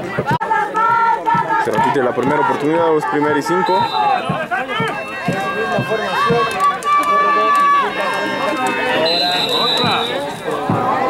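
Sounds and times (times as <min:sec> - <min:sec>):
voices shouting and yelling: 0:00.0 - 0:11.0.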